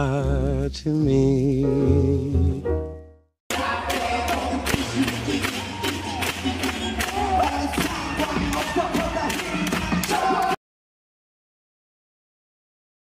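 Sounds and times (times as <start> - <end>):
crowd cheering: 3.5 - 10.6
live concert music with vocals: 3.5 - 10.6.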